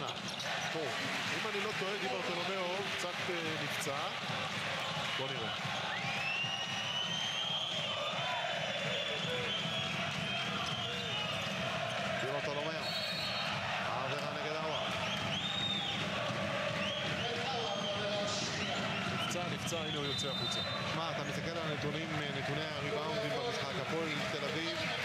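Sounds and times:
arena crowd din: 0:00.0 - 0:25.0
sneakers squeaking: 0:00.1 - 0:00.6.

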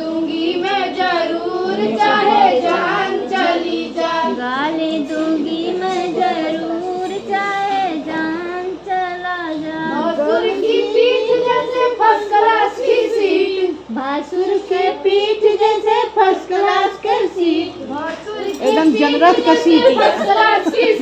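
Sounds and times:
women singing folk song: 0:00.0 - 0:21.0.

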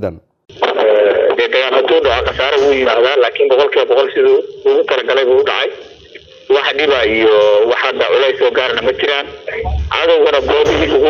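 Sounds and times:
voice talking over telephone: 0:00.0 - 0:11.0.

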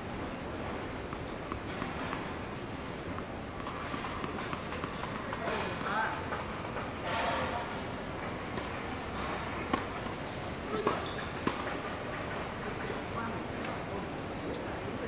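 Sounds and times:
tennis ball knocks: 0:00.5 - 0:06.4.

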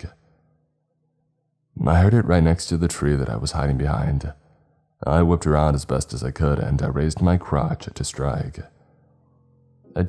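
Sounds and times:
man narrating: 0:00.0 - 0:00.2, 0:01.8 - 0:04.4, 0:05.0 - 0:08.8
faint low hum: 0:00.0 - 0:10.0.

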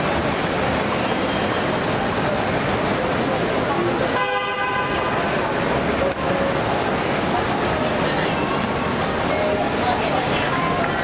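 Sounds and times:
people chatting: 0:00.0 - 0:11.0
traffic: 0:00.0 - 0:11.0
car horn: 0:04.1 - 0:05.4.

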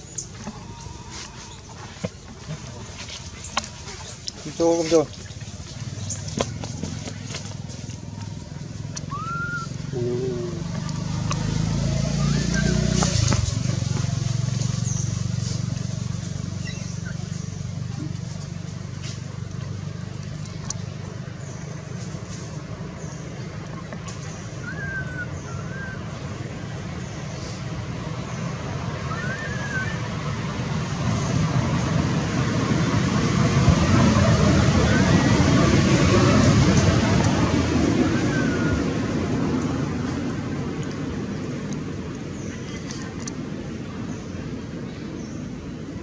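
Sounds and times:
motor vehicle passing by: 0:00.0 - 0:46.0.

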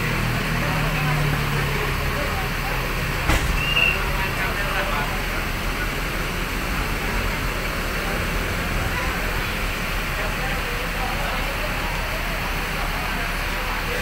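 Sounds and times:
people talking: 0:00.0 - 0:14.0
vehicle traffic: 0:00.0 - 0:14.0
sharp knock: 0:03.2 - 0:04.0
brief high squeak: 0:03.4 - 0:04.1.

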